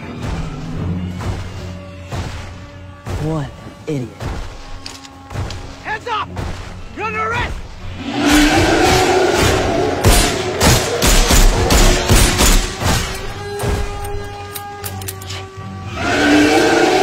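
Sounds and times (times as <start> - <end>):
loud film music: 0.0 - 17.0.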